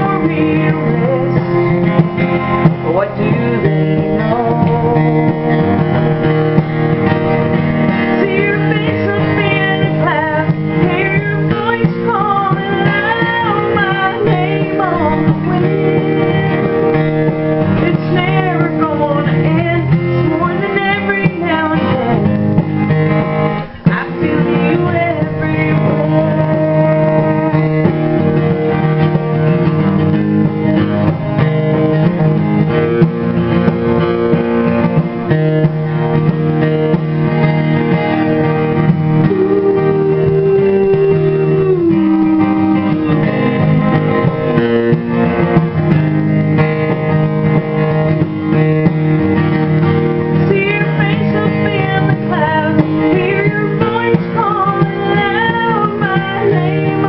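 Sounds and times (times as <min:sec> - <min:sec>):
woman singing: 0:00.0 - 0:06.0, 0:08.0 - 0:22.5, 0:23.6 - 0:28.5, 0:38.9 - 0:44.4, 0:50.3 - 0:57.0
acoustic guitar playing: 0:00.0 - 0:57.0.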